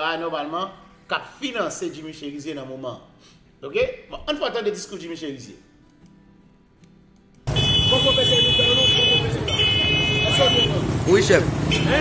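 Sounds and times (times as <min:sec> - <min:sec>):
traffic noise: 0:07.5 - 0:12.0.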